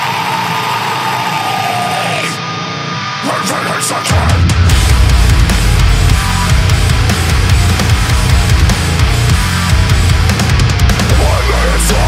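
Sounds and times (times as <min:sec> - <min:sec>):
heavy metal music: 0:00.0 - 0:12.0.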